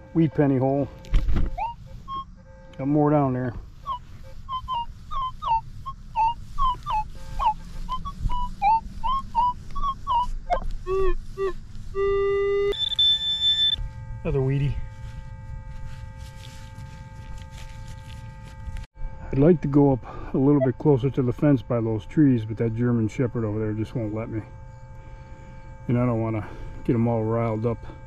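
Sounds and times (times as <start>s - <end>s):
metal detector held tone: 0.0s - 28.0s
metal detector warbling beeps: 0.2s - 14.9s, 19.3s - 24.6s.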